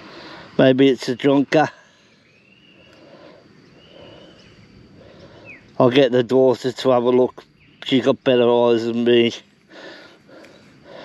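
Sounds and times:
faint outdoor background: 0.0s - 11.0s
distant bird whistling: 1.1s - 5.8s, 7.4s - 8.1s.

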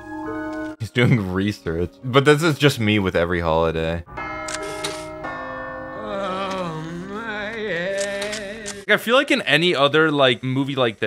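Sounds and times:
bell-like chiming chords: 4.1s - 7.7s.

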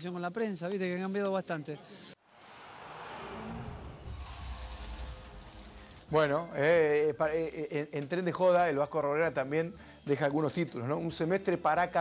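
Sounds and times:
rushing whoosh: 2.2s - 7.6s
deep rumble: 2.2s - 7.8s.

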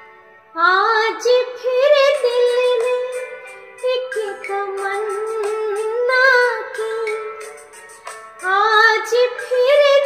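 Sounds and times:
karaoke backing track with drone: 0.0s - 10.0s
woman singing: 0.6s - 7.4s, 8.4s - 10.0s.

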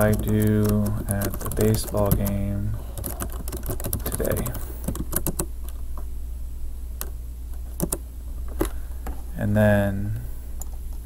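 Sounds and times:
keyboard keystrokes: 0.0s - 2.4s, 3.0s - 5.8s, 7.8s - 8.0s
low electrical hum: 0.0s - 11.0s.

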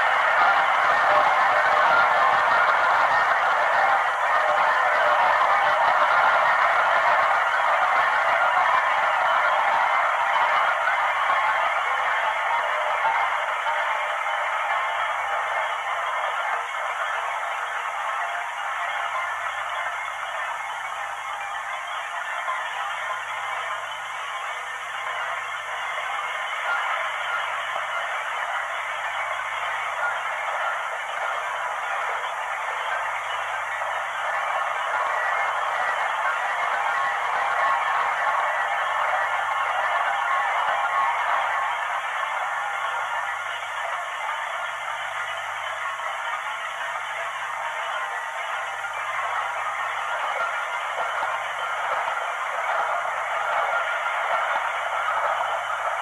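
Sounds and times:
steady hiss-like noise: 0.0s - 56.0s.

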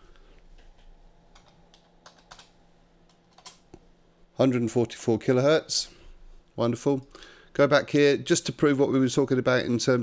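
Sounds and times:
keyboard keystrokes: 1.4s - 2.5s, 3.2s - 3.6s.

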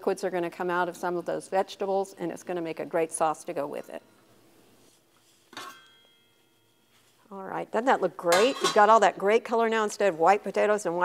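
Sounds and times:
pot lid clinking on metal pot: 5.6s - 6.3s, 8.3s - 9.0s.

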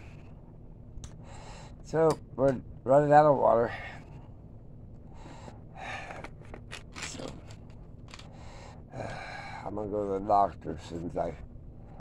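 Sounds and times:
low room hum: 0.0s - 12.0s
man breathing: 1.1s - 1.8s, 3.6s - 4.4s, 5.0s - 6.3s, 8.2s - 9.7s.

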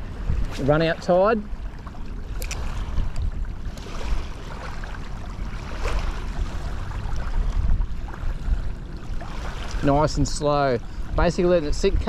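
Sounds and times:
shallow water washing: 0.0s - 12.0s
wind rumbling on microphone: 0.0s - 12.0s.

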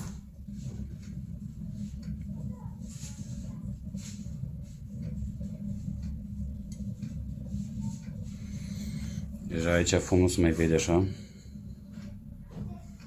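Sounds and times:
burner low hum: 0.0s - 13.0s.

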